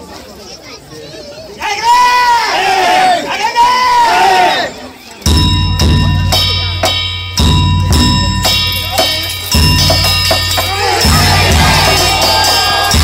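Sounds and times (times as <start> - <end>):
group of voices chanting: 1.6 - 4.7, 10.5 - 13.0
hand gongs ringing: 5.3 - 13.0
taiko drum beat: 5.3 - 13.0.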